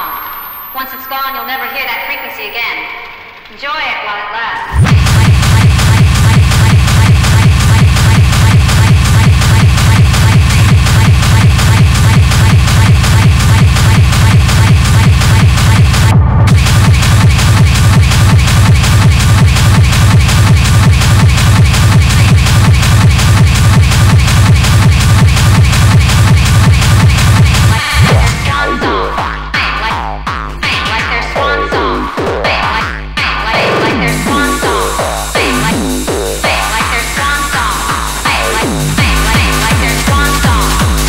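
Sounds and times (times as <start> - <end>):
hard techno music: 0.0 - 4.0, 4.6 - 41.0
driving percussion: 4.7 - 31.1, 32.0 - 41.0
fast kick drum: 4.7 - 41.0.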